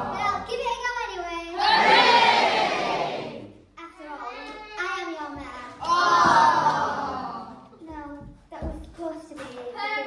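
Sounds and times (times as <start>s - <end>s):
child speaking: 0.0s - 1.6s, 3.8s - 5.9s, 7.7s - 10.0s.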